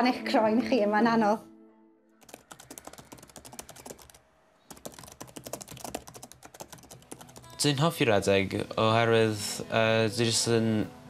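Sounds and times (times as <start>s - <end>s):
laptop keyboard typing: 2.2s - 7.7s.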